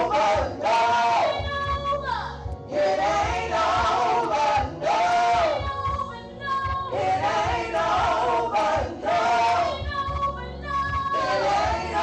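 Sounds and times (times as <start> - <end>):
women singing gospel: 0.0 - 12.0.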